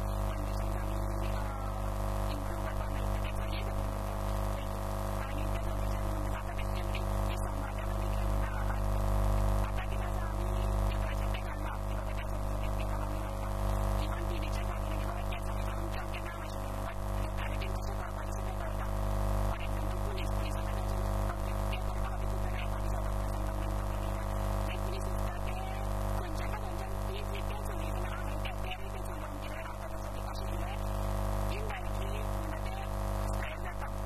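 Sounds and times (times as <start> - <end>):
electrical mains hum: 0.0 - 34.0.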